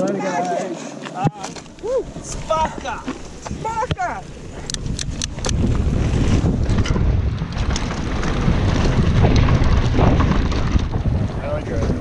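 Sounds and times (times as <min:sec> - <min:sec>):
bike tyre rumble on dirt: 0:01.5 - 0:12.0
wind buffeting microphone: 0:01.6 - 0:12.0.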